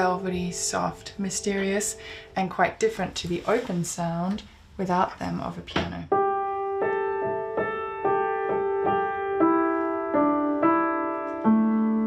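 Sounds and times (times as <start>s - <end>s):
muted piano notes and chords: 0.0s - 2.8s, 6.1s - 12.0s.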